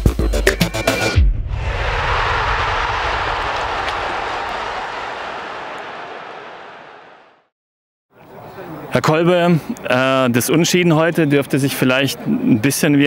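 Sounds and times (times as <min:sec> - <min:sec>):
rushing whoosh: 0:01.2 - 0:05.4.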